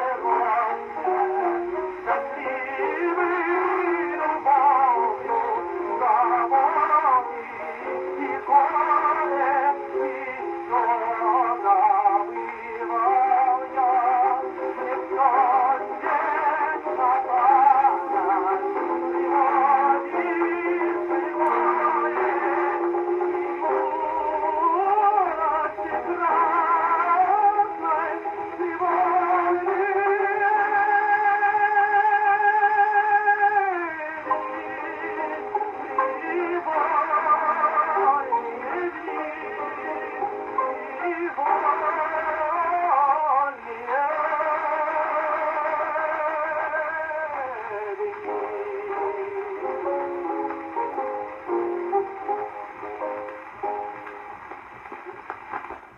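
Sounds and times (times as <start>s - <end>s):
musical accompaniment: 0.0s - 55.9s
tenor singing opera on gramophone: 0.0s - 55.9s.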